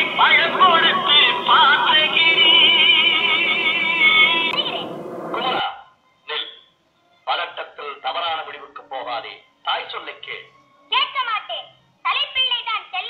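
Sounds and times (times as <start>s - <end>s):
person singing over backing music: 0.0s - 4.8s.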